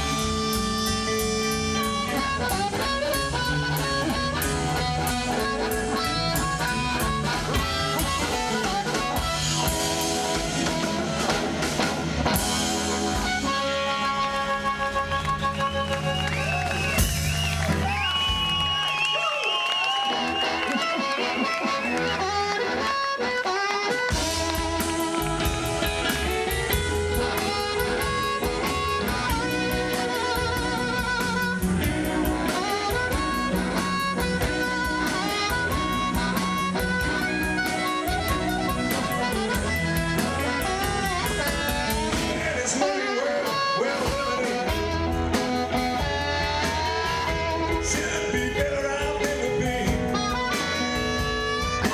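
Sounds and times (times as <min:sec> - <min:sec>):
amplified harmonica: 0:00.0 - 0:51.9
drum kit: 0:00.0 - 0:51.9
electric guitars: 0:00.0 - 0:51.9.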